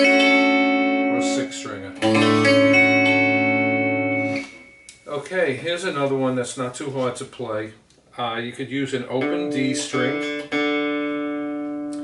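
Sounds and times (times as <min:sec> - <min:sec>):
electric guitar chord strummed: 0:00.0 - 0:05.0, 0:09.2 - 0:12.0.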